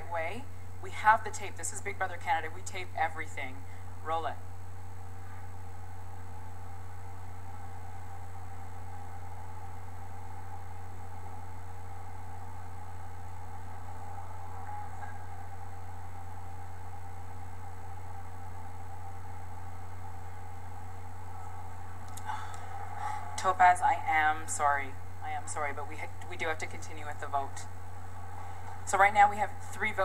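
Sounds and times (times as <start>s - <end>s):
low electrical hum with hiss: 0.0s - 30.0s.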